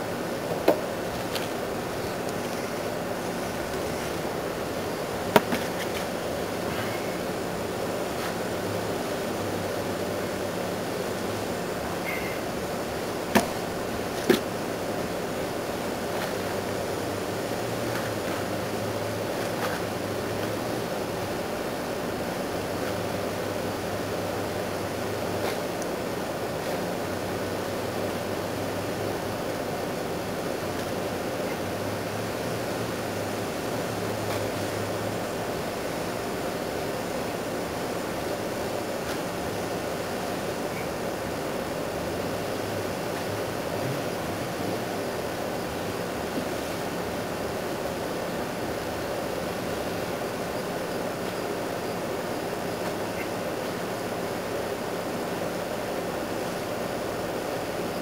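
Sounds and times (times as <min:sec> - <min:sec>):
steady hiss and low hum: 0:00.0 - 0:58.0.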